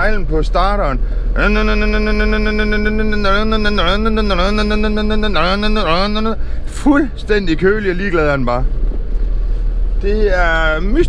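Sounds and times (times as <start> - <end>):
low steady rumble: 0.0 - 11.0
man holding long vowel: 1.4 - 6.4.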